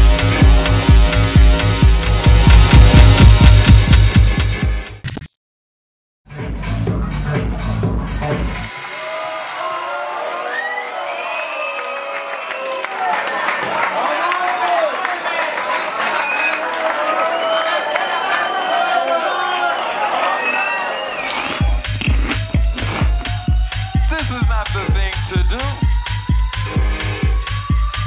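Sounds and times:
kick drum and bass beat: 0:00.0 - 0:04.9, 0:06.3 - 0:08.6, 0:21.6 - 0:28.0
crowd cheering and shouting: 0:07.6 - 0:28.0
dance track: 0:21.2 - 0:28.0.

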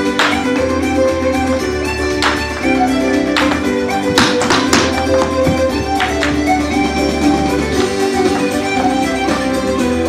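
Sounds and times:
traditional fiddle and guitar music: 0:00.0 - 0:10.0
hard shoes tapping on floor: 0:03.4 - 0:09.5.

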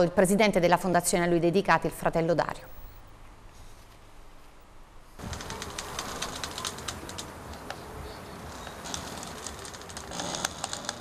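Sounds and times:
light clicks and ticks: 0:05.2 - 0:07.9.

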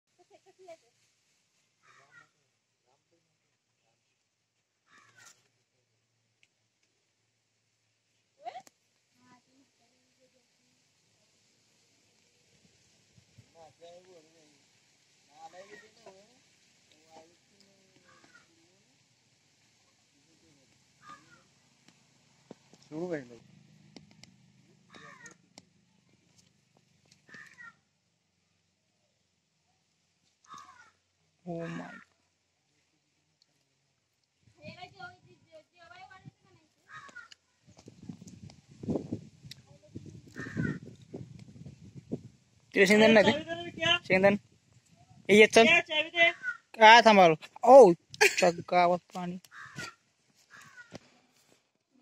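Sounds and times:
faint animal calls: 0:01.8 - 0:02.4, 0:04.8 - 0:05.5, 0:17.0 - 0:18.9, 0:19.9 - 0:21.6, 0:24.8 - 0:26.5, 0:27.1 - 0:27.9, 0:30.4 - 0:32.3, 0:36.8 - 0:37.6, 0:40.2 - 0:41.0, 0:46.3 - 0:46.8, 0:49.4 - 0:51.3
squirrel squeaking: 0:18.0 - 0:18.5, 0:24.9 - 0:25.4, 0:27.3 - 0:27.8, 0:40.2 - 0:40.9, 0:46.3 - 0:46.7, 0:49.5 - 0:51.0.

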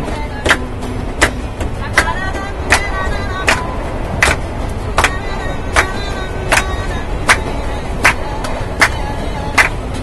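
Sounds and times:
moving train rumble: 0:00.0 - 0:10.0
people clapping in a steady beat: 0:00.4 - 0:09.9.

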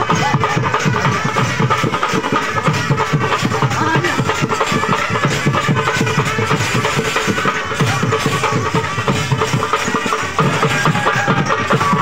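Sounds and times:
fast even drumming: 0:00.0 - 0:12.0.

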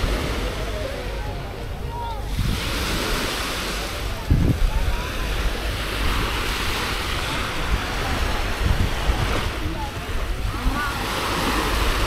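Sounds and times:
waves washing onto sand beach: 0:00.0 - 0:12.0
wind buffeting microphone: 0:00.0 - 0:12.0.

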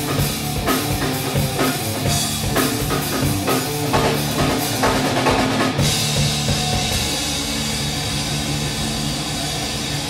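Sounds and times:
distorted electric guitar and bass: 0:00.0 - 0:10.0.

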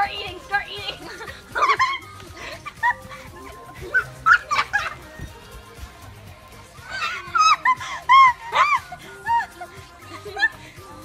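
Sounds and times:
girls laughing and squealing: 0:00.0 - 0:05.5, 0:06.5 - 0:11.0
background music: 0:00.0 - 0:11.0.

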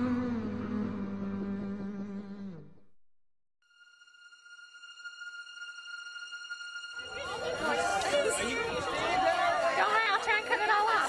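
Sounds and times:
background music: 0:03.7 - 0:11.0.

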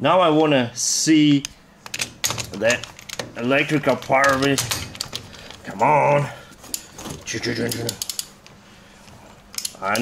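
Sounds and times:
ratchet wrench clicks: 0:07.7 - 0:08.3.

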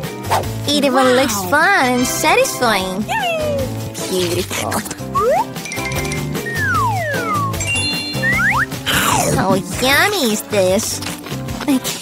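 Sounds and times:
upbeat background music: 0:00.0 - 0:12.0
cartoon whistle pitch glides: 0:06.5 - 0:09.0.

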